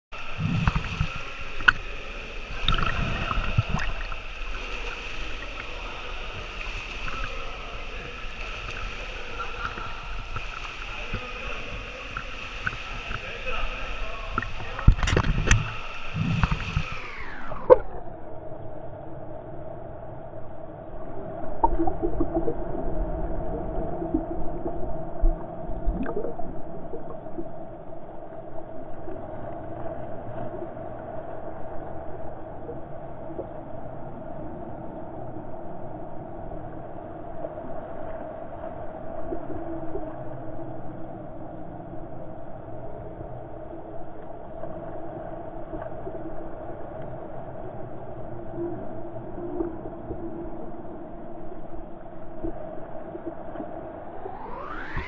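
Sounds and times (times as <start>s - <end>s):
pool water lapping and splashing: 0.2s - 20.0s, 20.7s - 55.0s
echoing hum: 0.2s - 36.9s, 40.1s - 55.0s.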